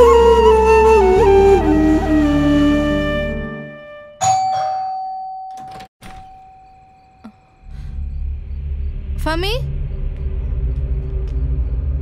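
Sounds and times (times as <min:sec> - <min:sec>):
doorbell chime: 0:04.2 - 0:07.7.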